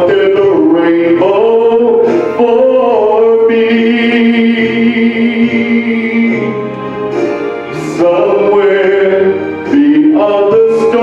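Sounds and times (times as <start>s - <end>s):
man singing into a microphone: 0.0s - 6.8s, 7.6s - 11.0s.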